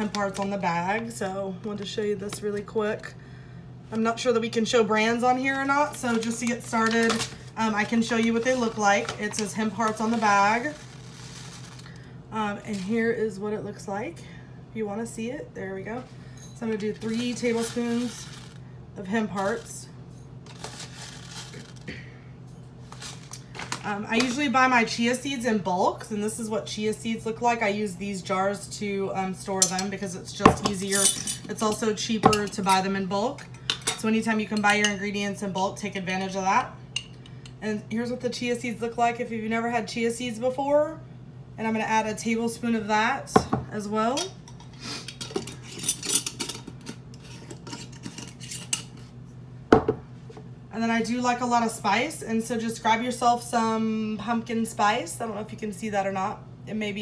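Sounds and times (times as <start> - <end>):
steady low hum: 0.0 - 57.0
spoon clinking against bowl and jars: 30.5 - 31.5.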